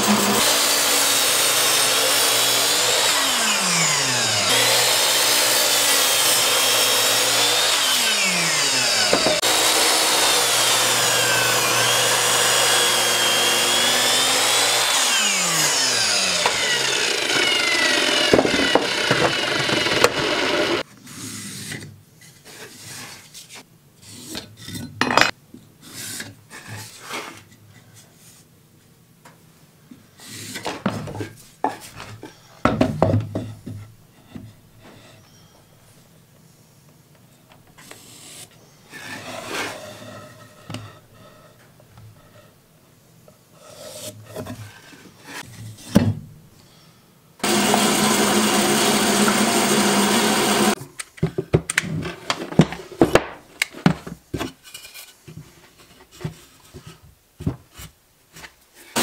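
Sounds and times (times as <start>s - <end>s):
electric power tool motor running: 0.0s - 20.8s, 47.4s - 50.8s.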